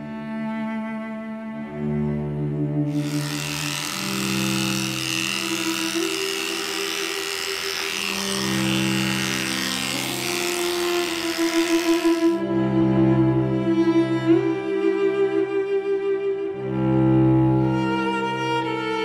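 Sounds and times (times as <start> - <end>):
slow cello music: 0.0 - 19.0
electric clippers running: 2.9 - 12.4.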